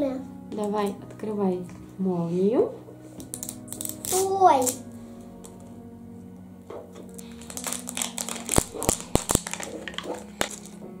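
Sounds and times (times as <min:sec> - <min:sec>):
faint background music: 0:00.0 - 0:11.0
plastic wrapping crinkling: 0:07.0 - 0:10.8.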